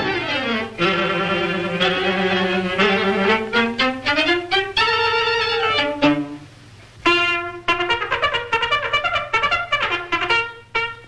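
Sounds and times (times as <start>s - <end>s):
trumpet playing: 0.0s - 11.0s.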